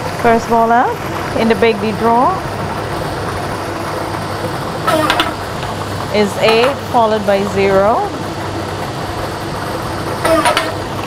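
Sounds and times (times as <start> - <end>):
ball-draw machine mixing balls: 0.0 - 11.0.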